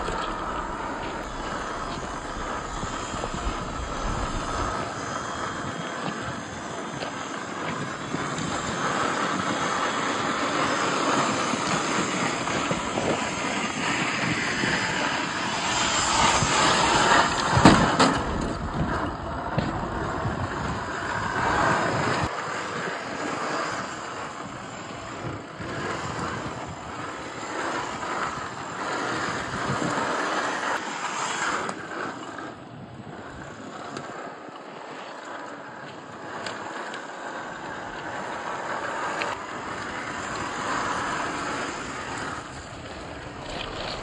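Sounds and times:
toy car electric motor whirring: 0.0 - 44.0
wind buffeting microphone: 0.0 - 44.0.

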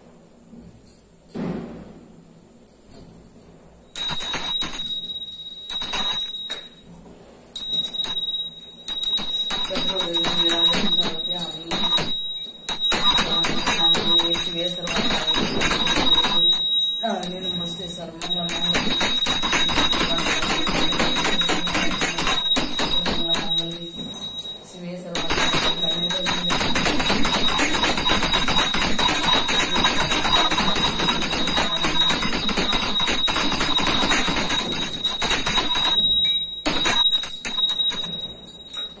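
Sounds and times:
hand bell ringing rapidly: 4.0 - 6.8, 7.6 - 39.0.

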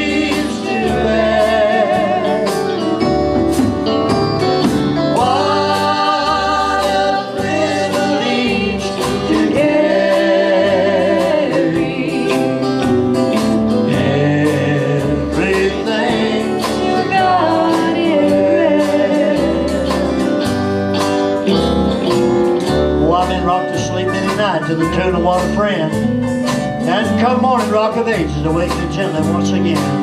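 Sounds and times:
electric guitar: 0.0 - 30.0
live country gospel band: 0.0 - 30.0.

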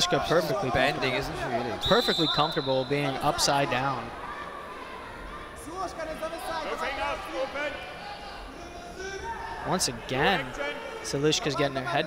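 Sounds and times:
sports hall hum: 0.0 - 12.0.

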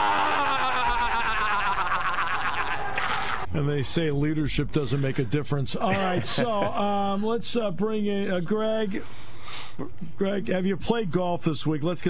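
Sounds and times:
man wailing: 0.0 - 3.4.

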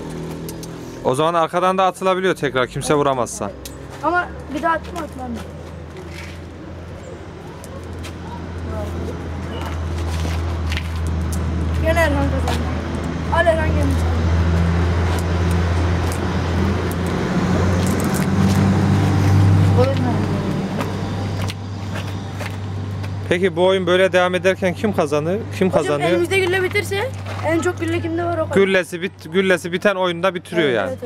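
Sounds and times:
vehicle engine humming: 0.0 - 31.0
children's voices: 4.0 - 5.5, 25.8 - 28.6.

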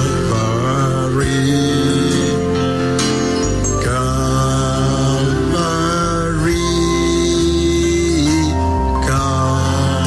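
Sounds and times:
person singing long notes: 0.0 - 2.6, 3.8 - 10.0.

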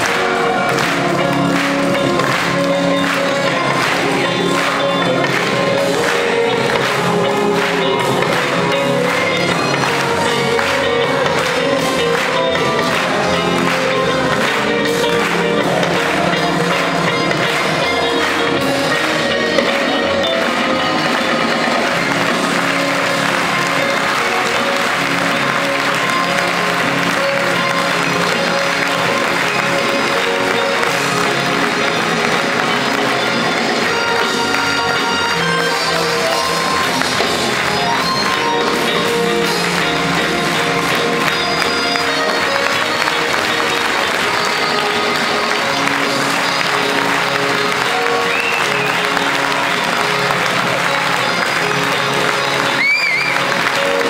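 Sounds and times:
audience applauding: 0.0 - 54.0
live band with bass and cello: 0.0 - 54.0.

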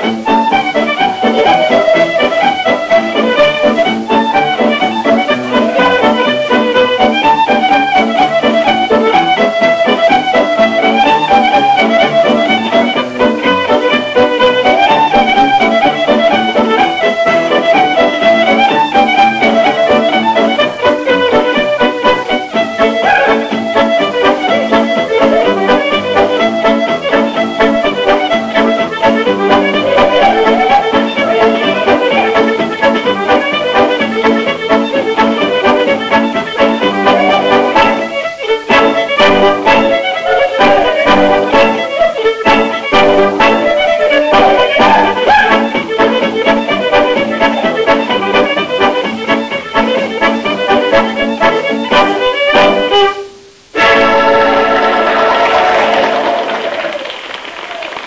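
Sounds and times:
fiddle tune with accompaniment: 0.0 - 56.1.

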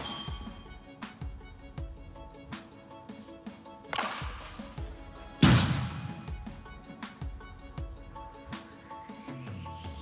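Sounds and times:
background music: 0.0 - 10.0
bat hitting ball: 3.9 - 4.5, 5.4 - 6.2.

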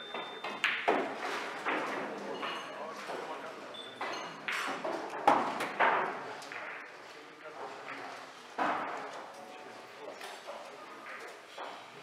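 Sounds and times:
billiard balls colliding: 0.4 - 3.3
background talk: 1.6 - 12.0.

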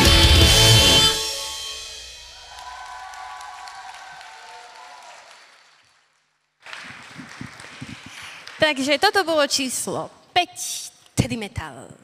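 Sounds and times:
heavy metal song: 0.0 - 2.2
audience applause: 2.4 - 8.9.

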